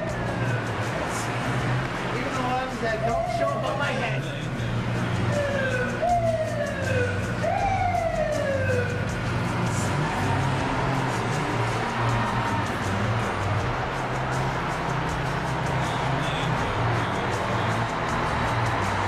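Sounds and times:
fire engine siren wailing: 0.0s - 0.9s, 2.3s - 4.4s, 5.0s - 19.0s.

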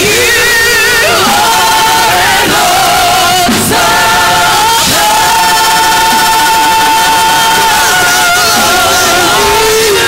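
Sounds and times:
choir and congregation singing: 0.0s - 10.0s
musical accompaniment: 0.0s - 10.0s.

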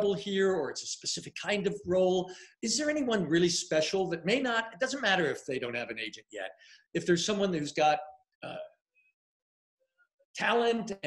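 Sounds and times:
man speaking: 0.0s - 8.8s, 10.4s - 11.0s.

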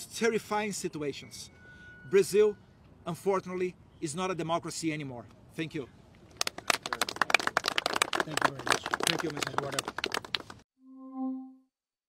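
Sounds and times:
people applauding: 6.4s - 10.6s.

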